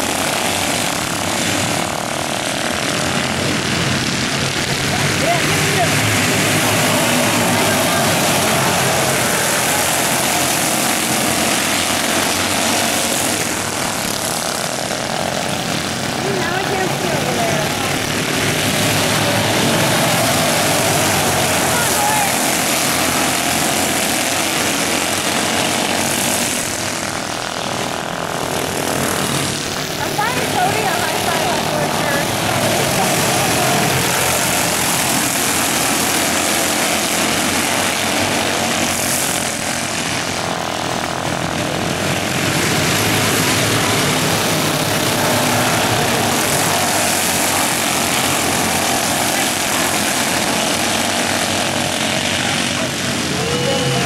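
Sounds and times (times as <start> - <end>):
drone of small race car engines: 0.0 - 54.0
race cars passing: 0.0 - 54.0.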